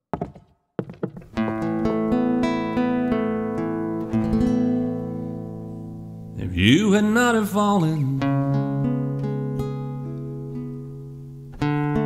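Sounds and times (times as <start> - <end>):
footsteps on wooden floorboards: 0.0 - 1.7
nylon-string guitar: 0.9 - 12.0.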